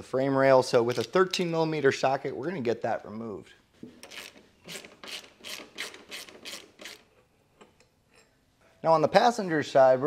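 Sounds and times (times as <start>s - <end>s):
ratchet wrench clicking: 4.0s - 7.0s.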